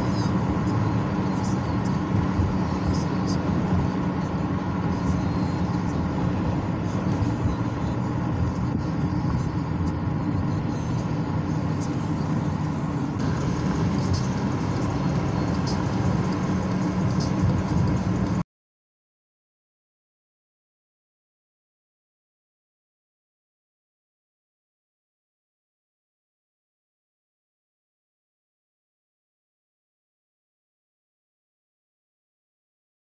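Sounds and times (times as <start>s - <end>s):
car engine and road noise: 0.0s - 18.5s.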